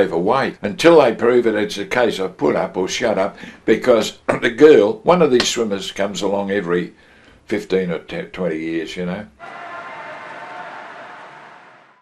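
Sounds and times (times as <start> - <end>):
indoor pool hall hum: 9.4 - 12.0.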